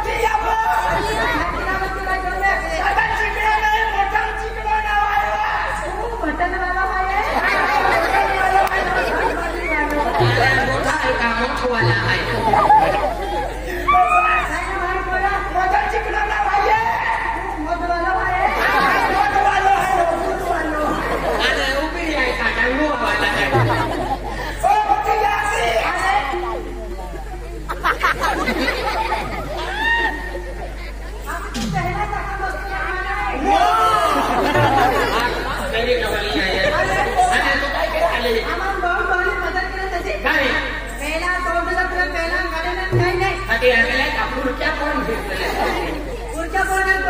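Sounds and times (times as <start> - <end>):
background chatter: 0.0 - 47.0
steady low hum: 0.0 - 47.0
voices talking: 0.0 - 47.0.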